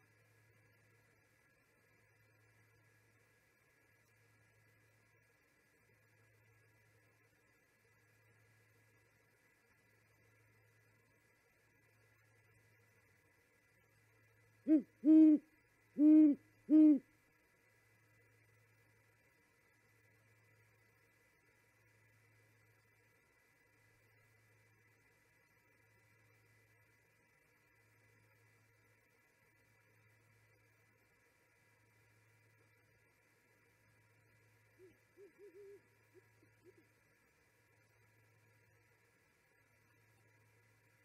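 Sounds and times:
owl hooting: 14.6s - 17.1s, 34.7s - 37.0s.

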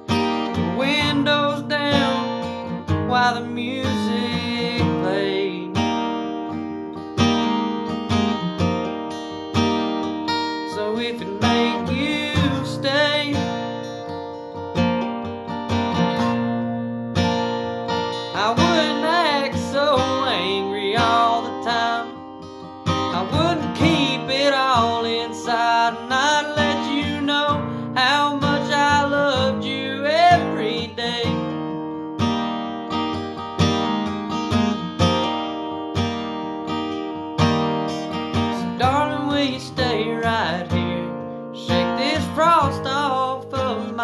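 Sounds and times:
acoustic guitar strumming: 0.0s - 44.0s
person singing: 0.4s - 5.9s, 8.0s - 9.0s, 10.6s - 13.6s, 18.3s - 22.3s, 23.0s - 31.6s, 38.4s - 44.0s.

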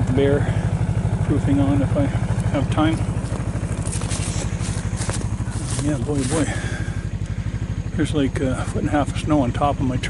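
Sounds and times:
snowmobile engine idling: 0.0s - 10.0s
clothing rubbing microphone: 3.2s - 6.4s.

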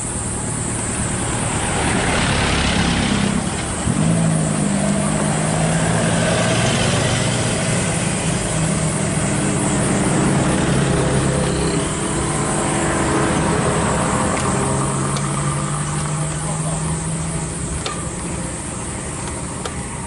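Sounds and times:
motorcycles passing: 0.0s - 20.0s
truck engine low hum: 0.0s - 20.0s.

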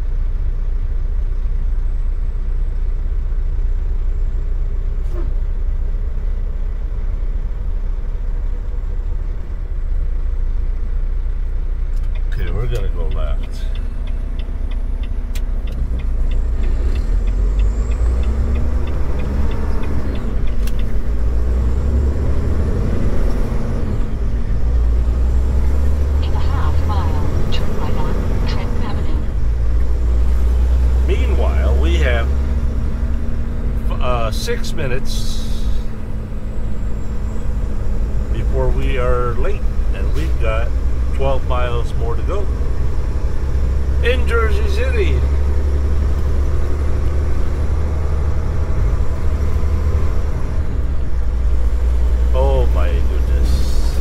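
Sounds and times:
road noise: 0.0s - 54.0s
truck diesel engine running: 0.0s - 54.0s
even ticks: 12.0s - 21.0s.

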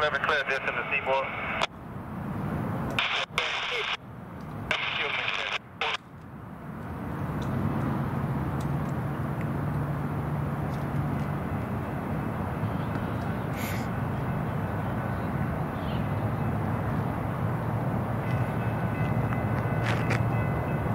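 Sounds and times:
diesel locomotive rumble: 0.0s - 20.9s.

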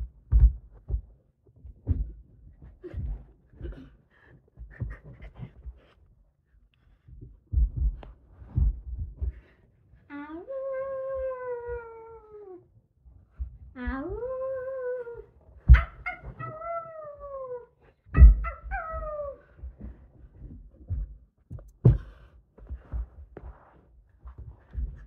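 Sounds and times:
girl imitating wolf howl: 10.4s - 12.6s, 13.8s - 15.3s, 16.3s - 17.8s
dull thumps: 19.6s - 25.0s.

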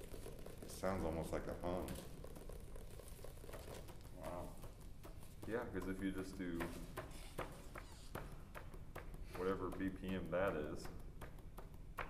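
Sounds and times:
fingers pattering on surface: 0.0s - 12.0s.

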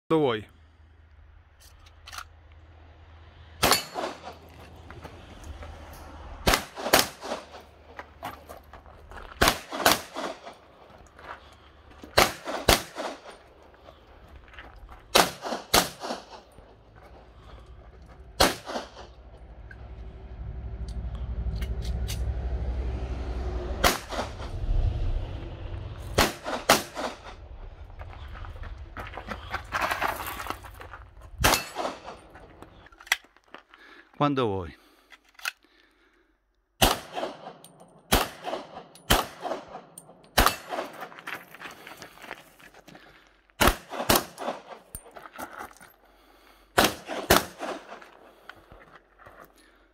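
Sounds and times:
pistol shots: 3.6s - 4.4s, 6.4s - 7.6s, 9.4s - 10.6s, 12.1s - 13.4s, 15.1s - 16.5s, 18.4s - 19.1s, 26.2s - 27.3s, 36.8s - 41.0s, 43.6s - 44.8s, 46.8s - 48.0s.

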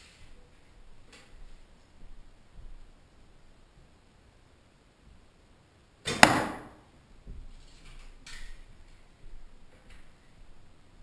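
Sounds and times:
arrow striking target: 6.0s - 6.8s
rustling and light knocks: 7.2s - 10.7s.

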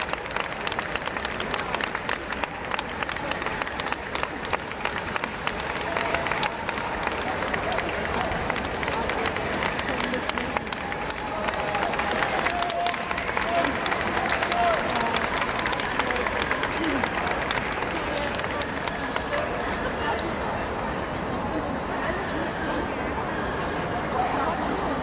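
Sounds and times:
hand-clapping: 0.0s - 20.0s
indistinct crowd chatter: 0.0s - 25.0s.

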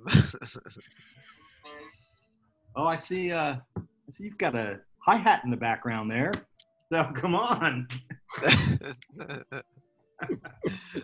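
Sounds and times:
person laughing: 0.0s - 1.0s, 8.3s - 9.6s, 10.2s - 11.0s.

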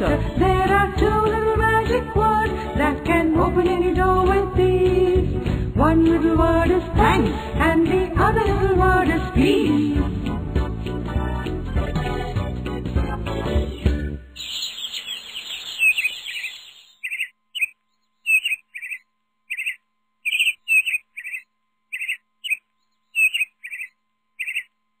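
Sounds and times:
music: 0.0s - 14.4s
songbirds chirping: 13.2s - 24.8s.

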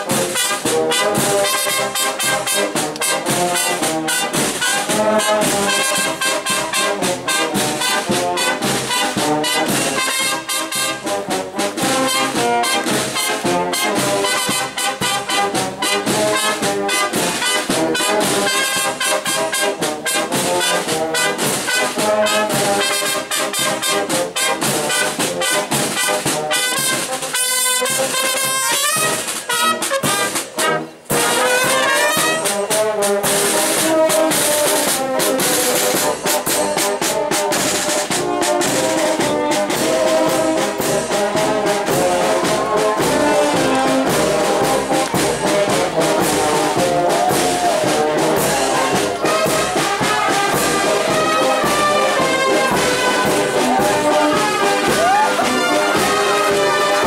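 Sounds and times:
brass band playing: 0.0s - 57.0s.

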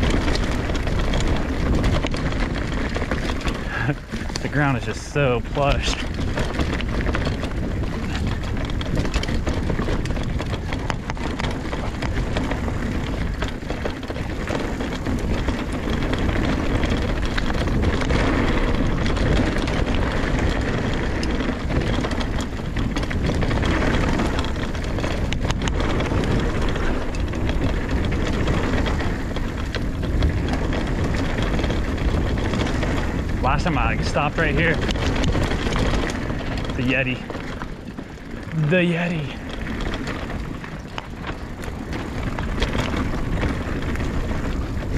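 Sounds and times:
bike knocking and rattling: 0.0s - 44.9s
tyre and trail noise: 0.0s - 44.9s
wind rumble on microphone: 0.0s - 44.9s.

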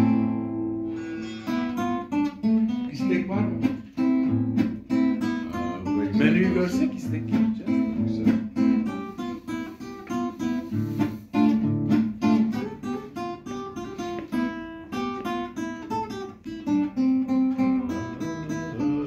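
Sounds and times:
classical guitar playing solo: 0.0s - 19.0s.

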